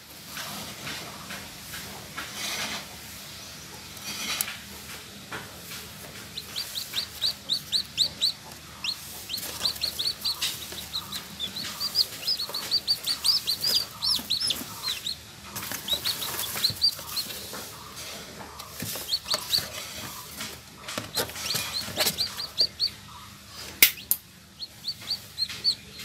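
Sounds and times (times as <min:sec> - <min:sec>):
chick peeping: 0:03.1 - 0:26.0.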